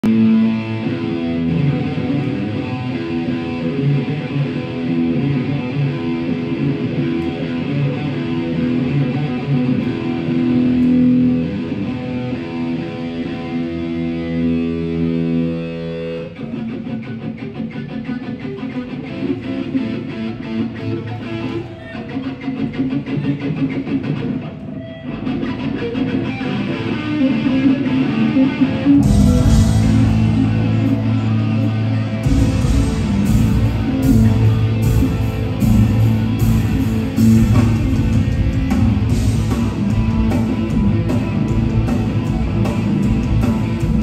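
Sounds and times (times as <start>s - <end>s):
electric guitar through pa: 0.0s - 44.0s.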